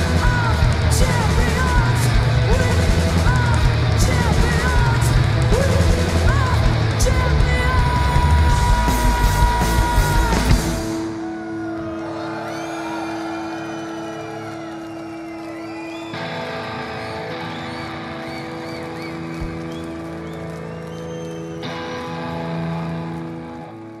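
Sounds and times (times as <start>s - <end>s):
electric guitar feedback drone: 0.0s - 24.0s
high rising and falling whistles: 13.3s - 21.6s.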